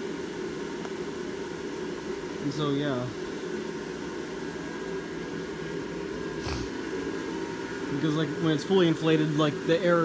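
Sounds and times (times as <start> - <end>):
blower fan high-pitched whir: 0.0 - 10.0.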